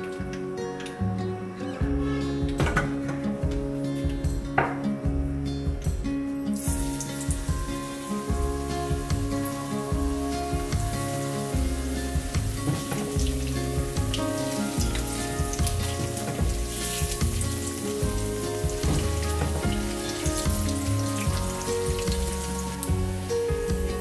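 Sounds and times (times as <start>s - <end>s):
background music: 0.0s - 24.0s
fritters sizzling in hot oil: 6.6s - 24.0s.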